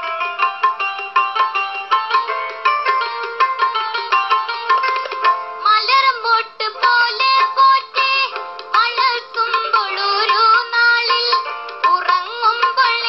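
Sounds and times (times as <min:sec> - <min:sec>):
instrumental accompaniment: 0:00.0 - 0:13.0.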